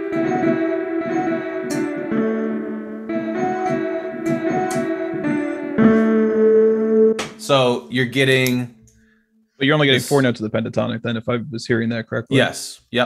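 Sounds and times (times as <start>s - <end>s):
electric keyboard melody: 0.0s - 8.3s.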